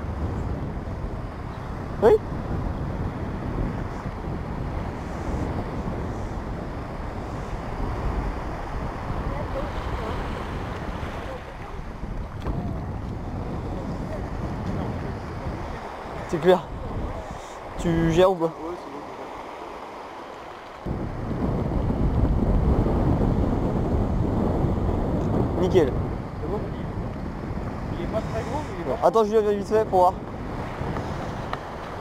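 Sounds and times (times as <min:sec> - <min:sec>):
small waves washing on beach: 0:00.0 - 0:32.0
wind buffeting microphone: 0:00.0 - 0:32.0.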